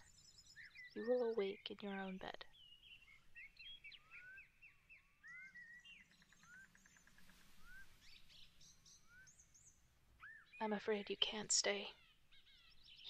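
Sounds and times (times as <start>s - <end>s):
bird trill: 0.0s - 10.8s, 11.8s - 13.0s
small birds chirping: 0.0s - 13.0s.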